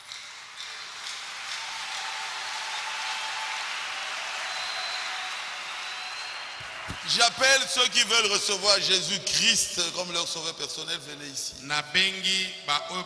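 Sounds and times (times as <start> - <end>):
congregation applauding: 0.0 - 10.5.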